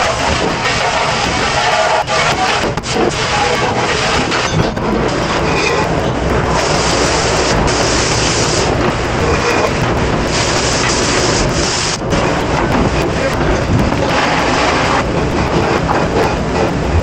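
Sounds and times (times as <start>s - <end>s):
dishwasher wash water rushing: 0.0s - 17.0s
spraying water hiss: 5.8s - 17.0s.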